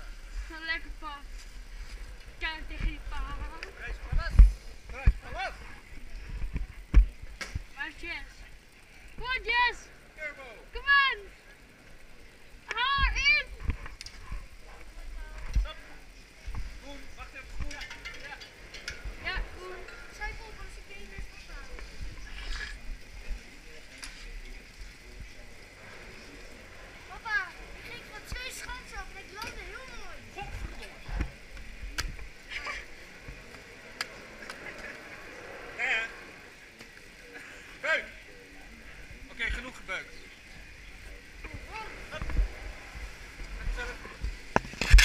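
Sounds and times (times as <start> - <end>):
people calling and chatting: 0.0 - 45.0
ski gear clatter: 44.6 - 45.0.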